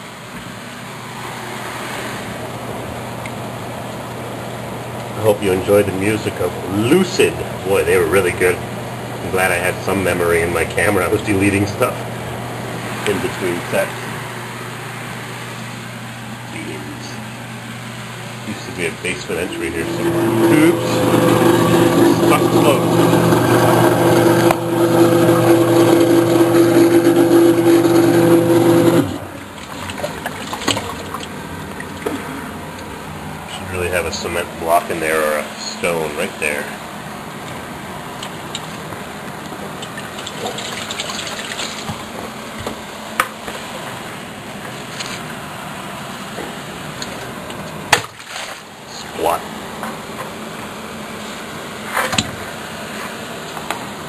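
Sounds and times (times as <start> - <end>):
steady mechanical hum: 0.0 - 54.0.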